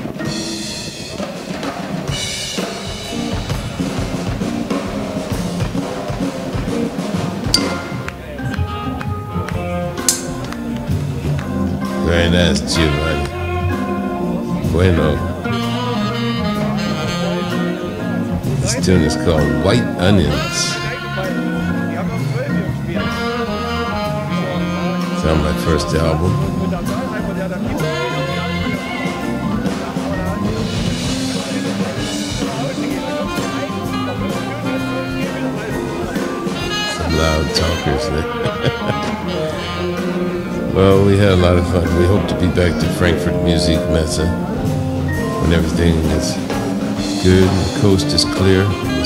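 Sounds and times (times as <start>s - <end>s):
live jazz band: 0.0s - 49.0s
steady bass line: 7.4s - 20.9s, 22.3s - 49.0s
sharp percussive hit: 7.5s - 8.4s, 10.1s - 10.6s.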